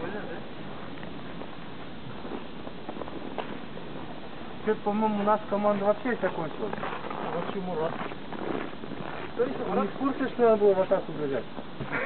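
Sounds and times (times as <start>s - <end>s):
background noise: 0.0s - 12.0s
footsteps in snow: 0.7s - 10.9s.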